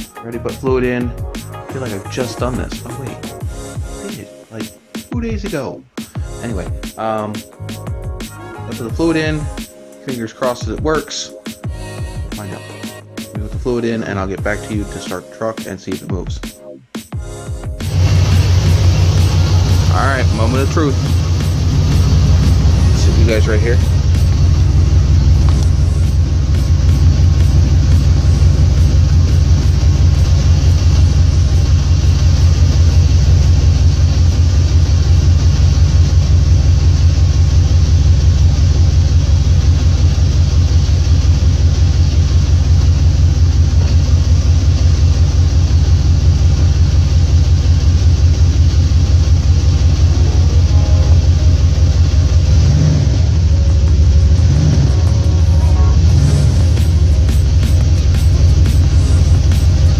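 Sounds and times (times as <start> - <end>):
pickup engine rumbling: 17.8 - 59.9.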